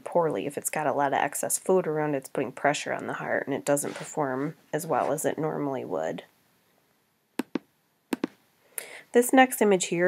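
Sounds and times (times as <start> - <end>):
intake of breath: 8.6 - 9.1.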